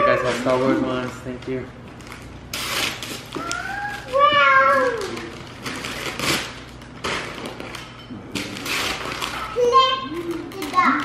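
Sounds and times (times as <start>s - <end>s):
wrapping paper tearing: 2.0s - 11.0s.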